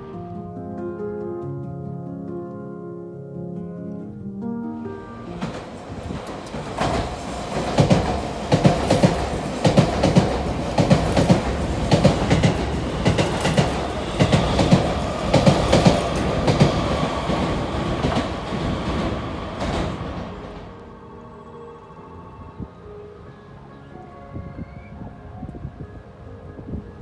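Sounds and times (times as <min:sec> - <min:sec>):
train rush of air: 0:04.8 - 0:23.6
train wheels clacking over rail joints: 0:05.4 - 0:20.6.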